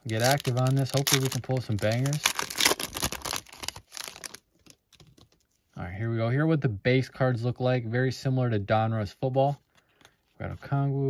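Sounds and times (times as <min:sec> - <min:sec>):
foil wrapper crinkling: 0:00.0 - 0:05.3.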